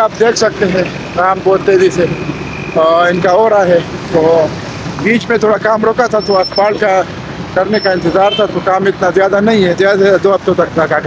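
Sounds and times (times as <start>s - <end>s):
engines and traffic rumble: 0.0s - 11.0s
man talking: 0.0s - 11.0s.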